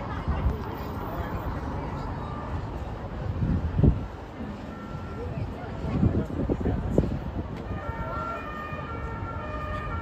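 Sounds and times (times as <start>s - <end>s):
city road traffic: 0.0s - 10.0s.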